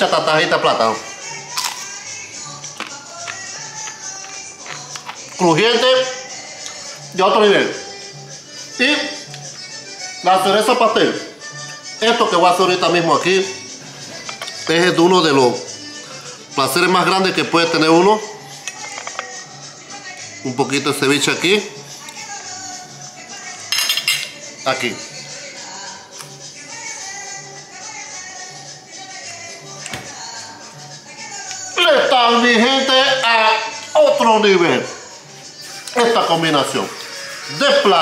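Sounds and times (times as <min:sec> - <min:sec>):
music with latin percussion: 0:00.0 - 0:38.0
crunchy food being chewed: 0:02.7 - 0:05.4
fork clinking against ceramic dish: 0:23.7 - 0:24.4.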